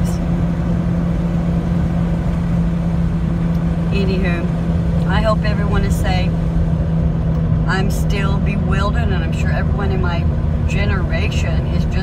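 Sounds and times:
car engine hum: 0:00.0 - 0:12.0
road rumble: 0:00.0 - 0:12.0.

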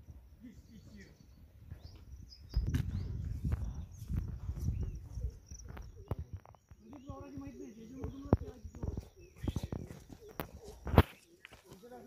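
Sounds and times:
footsteps on stony ground: 0:01.7 - 0:12.0.

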